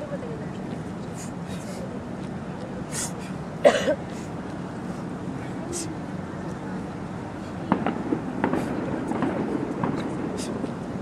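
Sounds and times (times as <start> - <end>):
outdoor background hum: 0.0 - 11.0.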